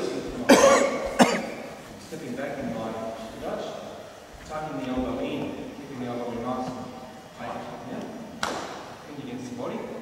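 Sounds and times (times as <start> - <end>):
person coughing: 0.5 - 1.7.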